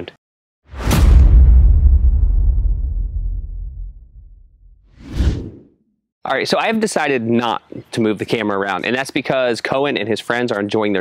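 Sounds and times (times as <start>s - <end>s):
low rumble: 0.7s - 5.4s
whoosh sound effect: 2.0s - 5.6s.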